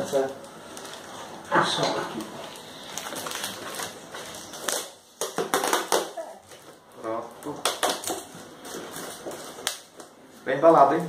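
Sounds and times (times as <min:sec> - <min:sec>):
packaging wrap crackling and tearing: 0:00.1 - 0:01.1, 0:02.1 - 0:10.2.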